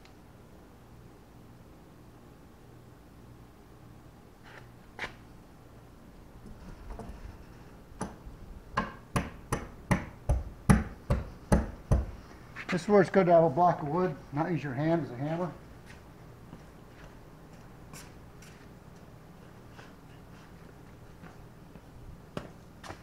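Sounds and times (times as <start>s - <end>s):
hand striking metal knocks: 8.8s - 12.1s.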